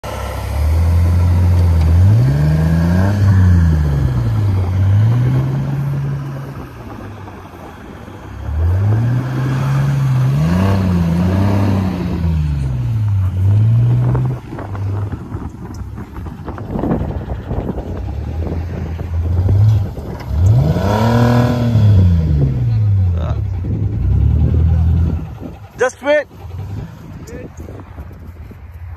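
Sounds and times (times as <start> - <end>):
car engine revving hard: 0.1 - 7.0, 8.4 - 15.2, 17.8 - 25.6.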